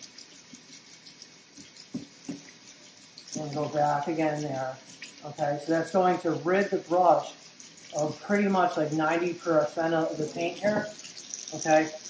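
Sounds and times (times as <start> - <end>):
faucet running softly: 0.0 - 12.0.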